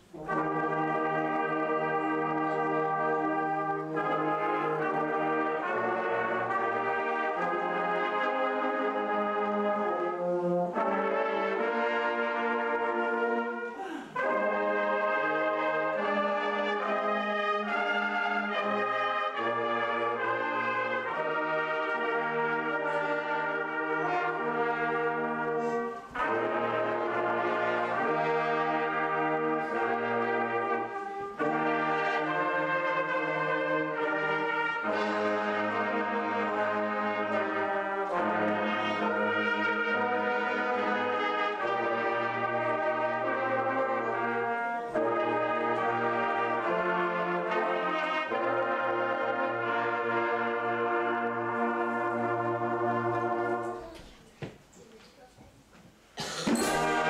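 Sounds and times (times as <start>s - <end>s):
brass band playing slow chords: 0.0s - 54.1s, 56.0s - 57.0s.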